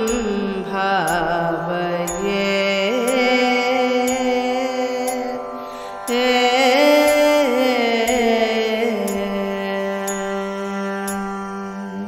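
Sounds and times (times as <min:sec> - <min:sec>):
woman singing ornamented notes: 0:00.0 - 0:12.0.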